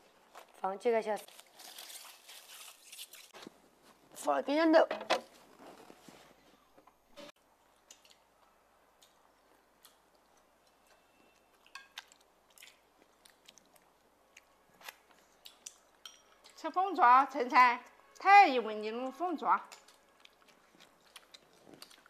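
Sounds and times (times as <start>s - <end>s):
soft chewing: 7.4s - 16.6s, 19.6s - 22.0s.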